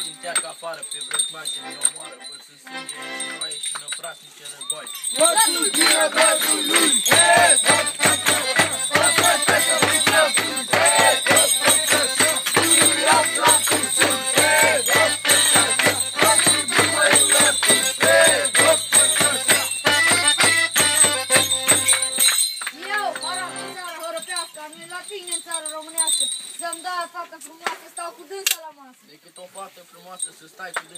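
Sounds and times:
bells jingling: 0.0s - 28.4s, 29.1s - 30.9s
drum beating fast rhythm: 5.1s - 22.2s
melody: 19.7s - 24.1s.

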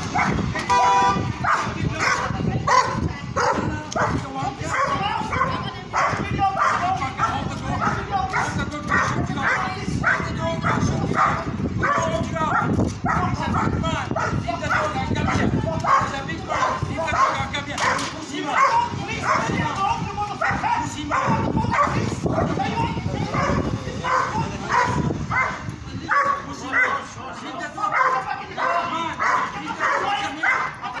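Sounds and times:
large dog barking aggressively: 0.0s - 0.6s, 1.4s - 19.6s, 20.4s - 27.1s, 27.8s - 30.8s.

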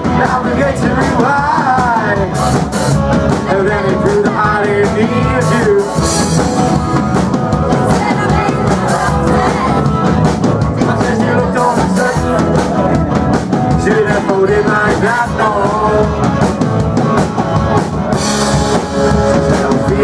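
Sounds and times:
indie rock band playing live: 0.0s - 20.0s.

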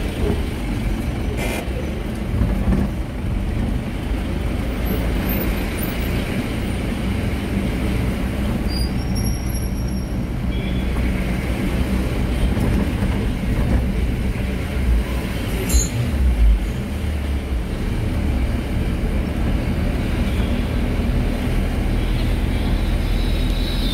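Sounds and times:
van engine and road rumble: 0.0s - 23.9s.

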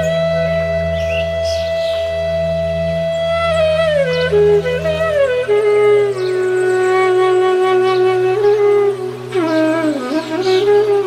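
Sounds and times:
low sustained drone: 0.0s - 10.7s
flute holding long note: 0.0s - 11.0s.

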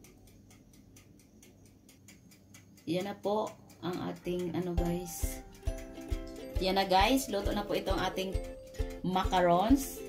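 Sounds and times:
oven timer ticking: 0.0s - 10.0s.

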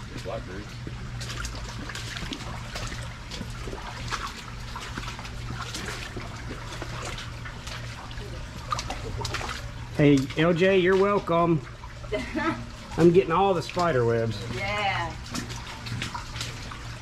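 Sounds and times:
creek water trickling: 0.0s - 17.0s
splashes from wading: 0.0s - 17.0s
steady low hum: 0.0s - 17.0s.

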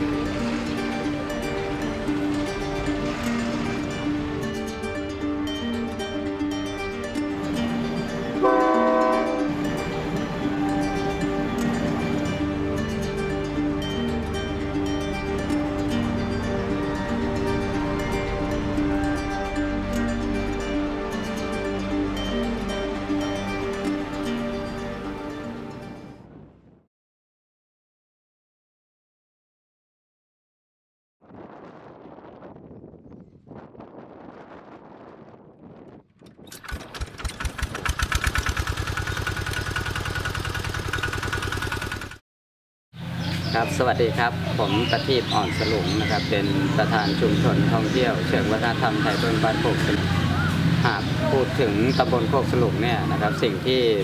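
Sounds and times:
background music: 0.0s - 26.5s, 43.4s - 54.0s
locomotive horn: 8.4s - 9.6s
wind buffeting microphone: 31.2s - 38.1s
engine turning over: 36.2s - 42.2s.

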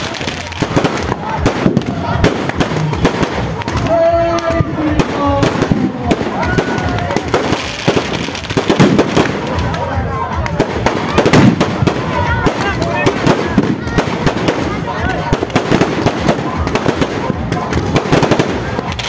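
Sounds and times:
firecrackers crackling and banging: 0.0s - 19.0s
voices of onlookers: 0.0s - 19.0s.

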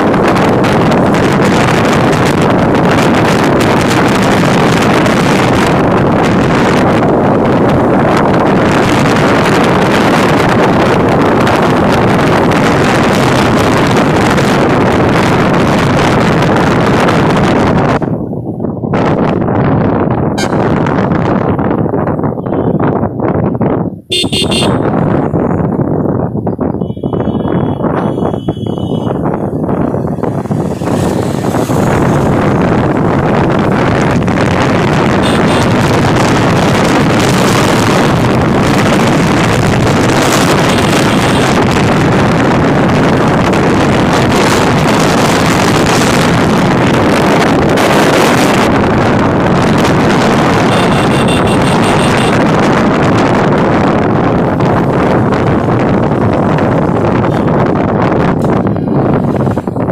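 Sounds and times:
wind buffeting microphone: 0.0s - 59.9s
vehicle horns tooting: 20.4s - 20.8s, 24.1s - 25.1s, 26.7s - 29.4s, 35.1s - 36.0s, 40.6s - 41.6s, 50.6s - 52.5s.

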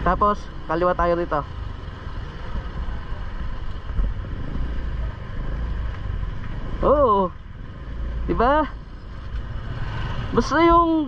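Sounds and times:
faint street noise: 0.0s - 11.0s
motor vehicle rumble: 0.0s - 11.0s.

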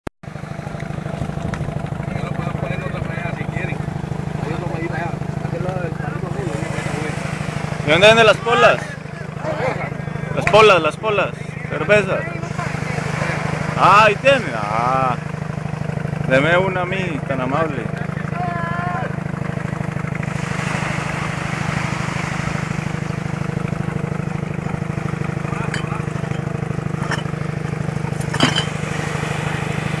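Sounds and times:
small engine idling: 0.3s - 30.0s
man talking: 7.8s - 15.2s, 16.2s - 19.1s
rushing hiss: 20.2s - 23.3s.

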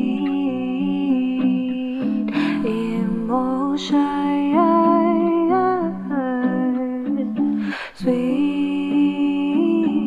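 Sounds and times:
woman humming layered harmony: 0.0s - 7.4s, 8.0s - 10.0s.

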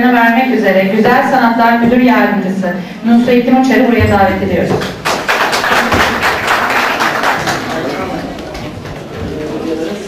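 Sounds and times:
audience applauding: 4.9s - 8.7s.

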